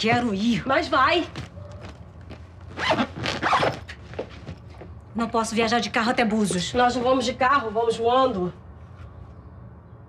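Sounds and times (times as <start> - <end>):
bag zipper being pulled: 2.6 - 4.3.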